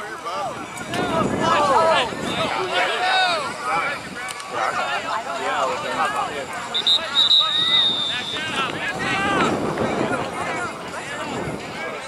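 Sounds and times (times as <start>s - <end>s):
referee's whistle blast: 6.7s - 8.7s.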